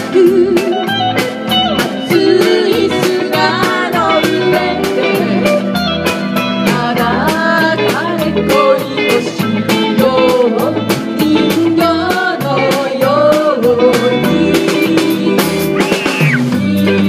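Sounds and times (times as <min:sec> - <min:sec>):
person singing: 0:00.0 - 0:01.0, 0:01.6 - 0:17.0
live band playing pop song: 0:00.0 - 0:17.0.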